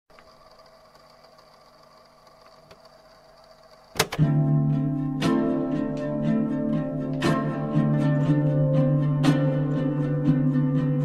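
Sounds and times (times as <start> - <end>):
faint steady hum: 0.1 - 4.2.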